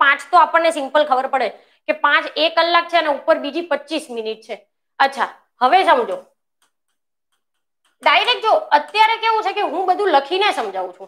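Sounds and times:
person speaking: 1.9 - 6.4, 7.9 - 11.0
chalk ticking on blackboard: 6.2 - 10.7.

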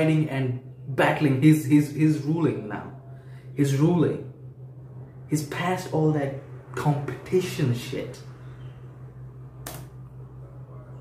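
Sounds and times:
steady low hum: 0.0 - 11.0
brief click: 9.6 - 9.9.

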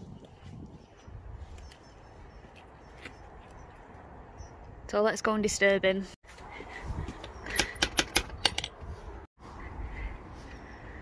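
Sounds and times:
outdoor background: 0.0 - 11.0.

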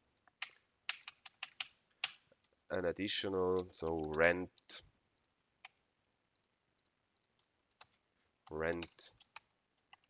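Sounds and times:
computer keyboard typing: 0.3 - 2.2, 6.4 - 10.0.

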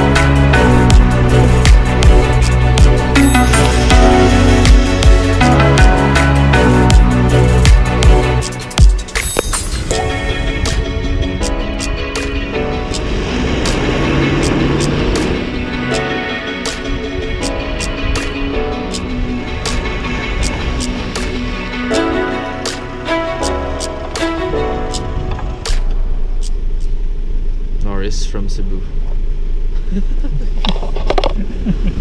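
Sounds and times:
background music: 0.0 - 27.0
engine and road noise in cabin: 10.6 - 32.0
vehicle driving past: 12.6 - 16.6.

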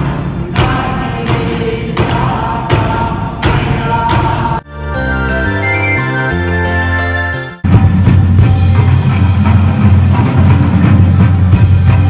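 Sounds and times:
frame drums struck with sticks: 0.0 - 4.6
group singing: 0.0 - 4.7.

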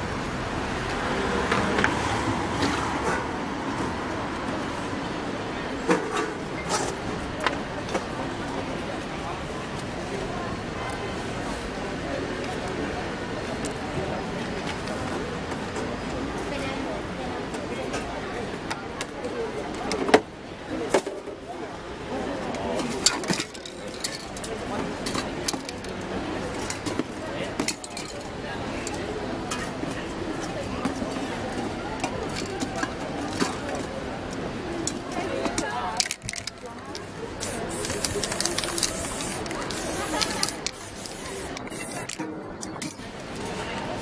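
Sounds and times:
spray cans clicking and knocking: 35.4 - 43.0
spray paint can hissing: 37.4 - 42.2.

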